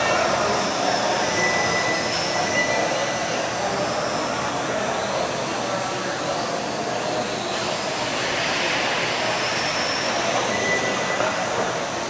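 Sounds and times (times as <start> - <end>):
rc car motor whine: 0.0 - 12.0
thin high tone: 0.0 - 12.0.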